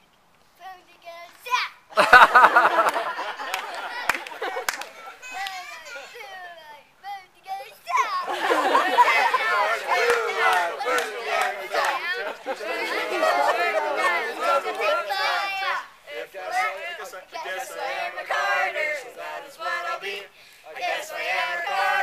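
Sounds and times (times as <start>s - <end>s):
children singing and calling out: 3.2s - 22.0s.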